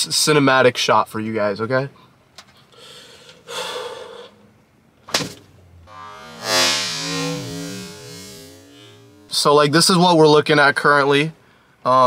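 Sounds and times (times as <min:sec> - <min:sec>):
sharp breath: 0:02.7 - 0:04.4.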